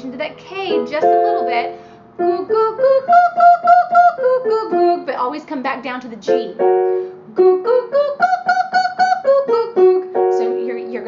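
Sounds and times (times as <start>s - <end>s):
woman singing vocal scale: 0.0s - 11.0s.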